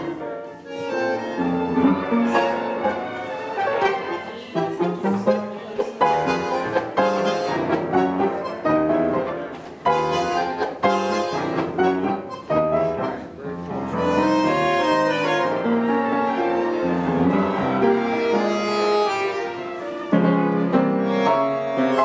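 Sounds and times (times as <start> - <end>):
live tango music: 0.0 - 22.0.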